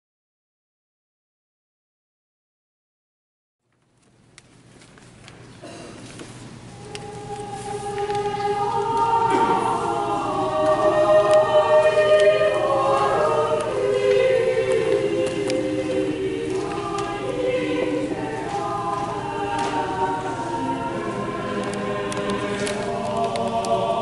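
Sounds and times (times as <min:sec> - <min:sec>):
congregation and choir singing hymn: 0:06.7 - 0:24.0.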